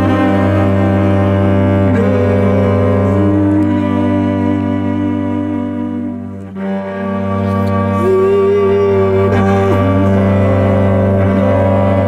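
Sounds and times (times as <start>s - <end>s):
bowed cello double stop: 0.0s - 12.0s.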